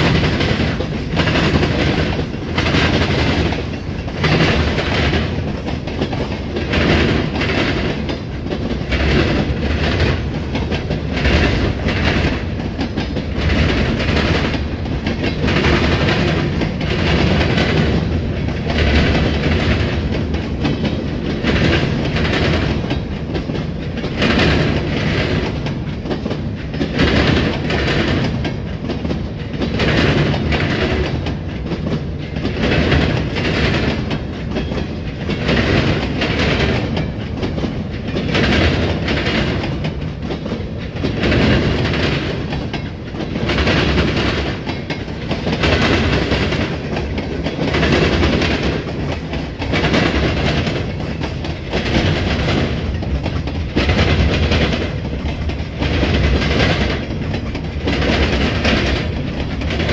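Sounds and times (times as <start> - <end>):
train wheels rumbling on rails: 0.0 - 59.9
wheels clacking over rail joints: 0.0 - 59.9.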